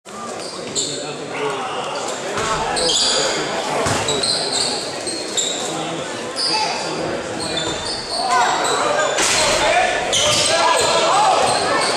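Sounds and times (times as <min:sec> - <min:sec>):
spectators talking: 0:00.1 - 0:11.9
sneaker squeak: 0:00.4 - 0:01.2, 0:02.4 - 0:11.9.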